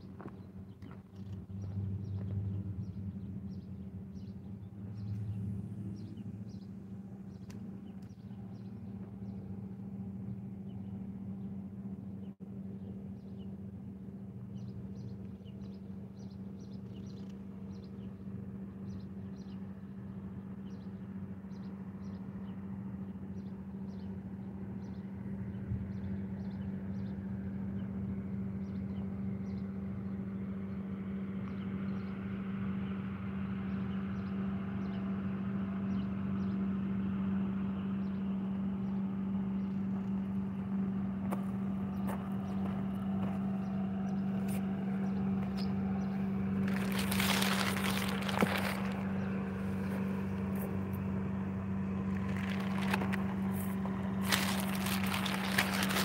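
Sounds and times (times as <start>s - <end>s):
rustling and scraping near microphone: 46.6s - 49.1s, 52.1s - 56.0s.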